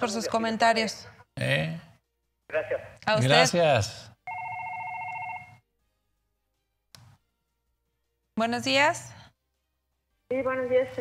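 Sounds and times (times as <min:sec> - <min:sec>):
telephone ringing electronic warble: 0:04.3 - 0:05.6.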